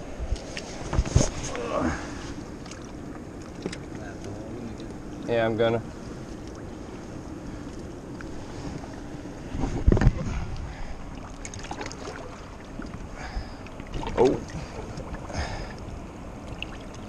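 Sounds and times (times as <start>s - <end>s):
wind on microphone: 8.3s - 11.2s.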